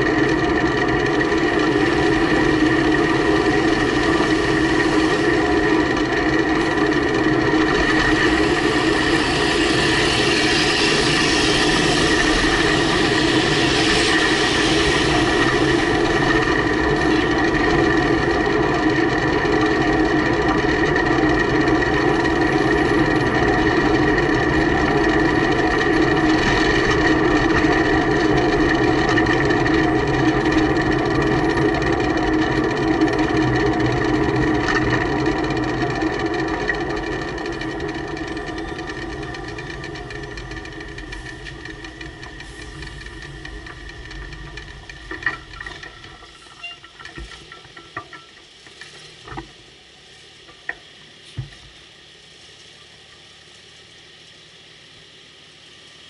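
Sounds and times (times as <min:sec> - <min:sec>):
diesel truck engine running: 0:00.0 - 0:48.0.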